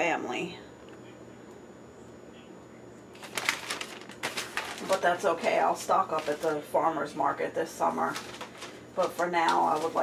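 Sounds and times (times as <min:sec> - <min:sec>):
paper rustling and crinkling: 0:03.1 - 0:06.8, 0:07.8 - 0:10.0.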